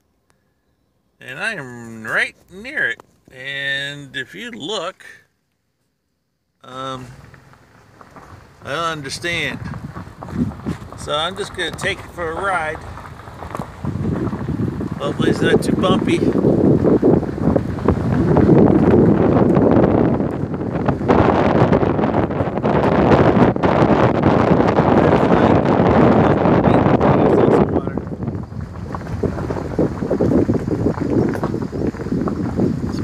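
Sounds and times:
tires crunching on gravel road: 0:01.2 - 0:05.1, 0:06.6 - 0:33.0
wind buffeting microphone: 0:07.0 - 0:33.0.

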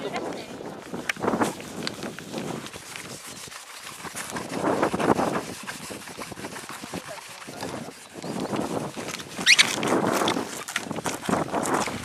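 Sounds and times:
stone scratching on sandpaper: 0:00.4 - 0:12.0.

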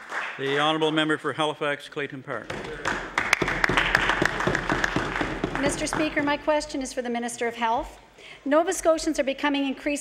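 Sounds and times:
many hands clapping: 0:00.0 - 0:00.7, 0:02.5 - 0:06.6.

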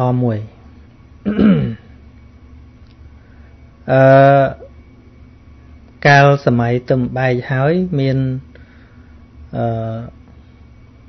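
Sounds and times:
man clearing his throat: 0:01.2 - 0:01.9.

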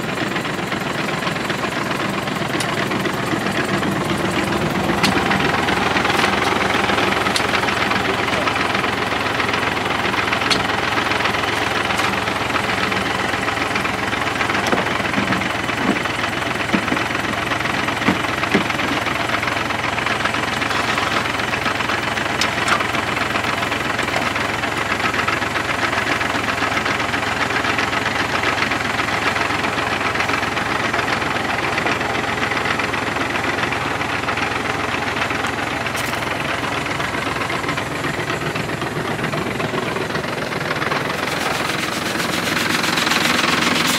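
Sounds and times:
tractor diesel engine idling: 0:00.0 - 0:43.9.

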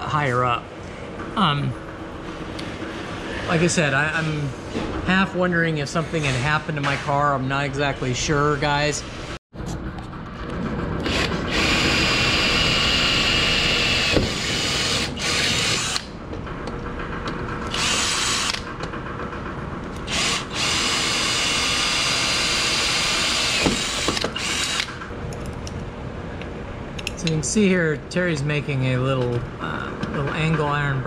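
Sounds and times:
cordless drill whining: 0:11.0 - 0:16.1, 0:17.7 - 0:18.7, 0:20.1 - 0:24.9.

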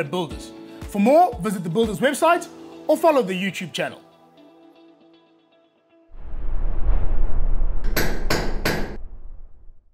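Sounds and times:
low rumble: 0:06.1 - 0:09.9.

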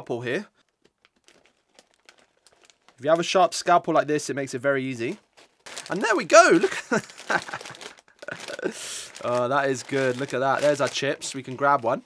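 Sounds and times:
plastic bag crinkling: 0:00.6 - 0:03.7, 0:04.9 - 0:12.0.

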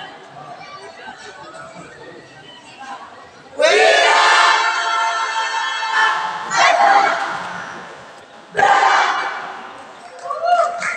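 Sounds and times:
students shouting in unison: 0:08.6 - 0:09.4.

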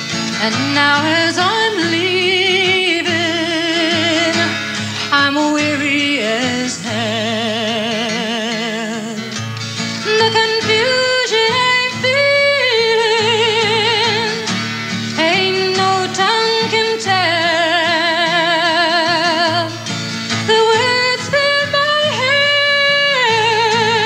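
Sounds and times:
acoustic guitar: 0:00.0 - 0:24.0.

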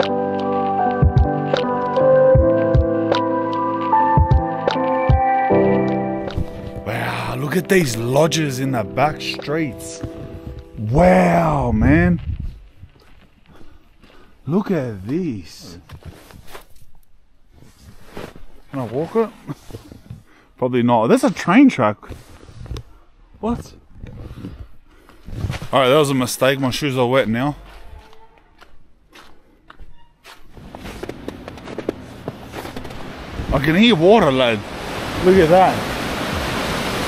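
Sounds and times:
man talking: 0:06.8 - 0:10.1, 0:10.8 - 0:12.3, 0:14.4 - 0:15.8, 0:25.7 - 0:27.8, 0:33.5 - 0:34.6, 0:35.2 - 0:35.9
soft footsteps on snowy street: 0:09.7 - 0:10.8, 0:11.9 - 0:20.4, 0:24.7 - 0:33.6
footsteps on snow: 0:25.0 - 0:33.5
stream water rushing: 0:32.1 - 0:37.0.

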